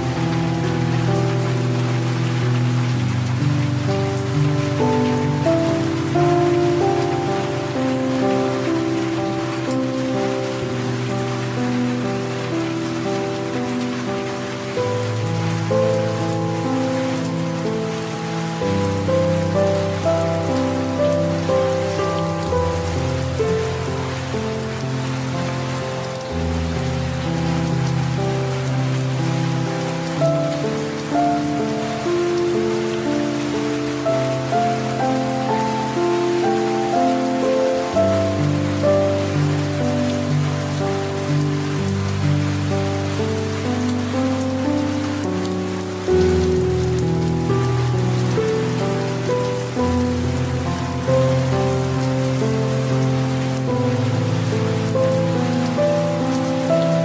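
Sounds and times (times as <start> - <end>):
soft instrumental relaxation music: 0.0 - 57.0
steady rain falling: 0.0 - 57.0.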